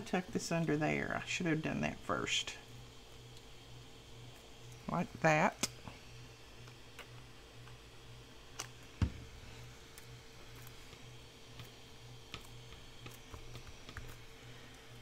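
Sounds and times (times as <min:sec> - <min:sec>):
faint steady hum: 0:00.0 - 0:15.0
hands tapping paper: 0:12.3 - 0:14.2.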